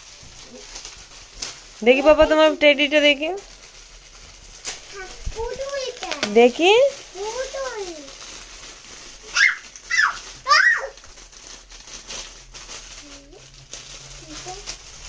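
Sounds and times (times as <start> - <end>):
foil gift wrap rustling: 0.0 - 15.0
child's short high yelps: 9.3 - 11.0.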